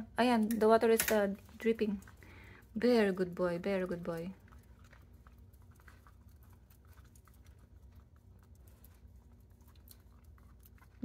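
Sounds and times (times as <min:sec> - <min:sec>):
low room hum: 0:00.0 - 0:11.0
dog licking metal water spout: 0:01.2 - 0:11.0.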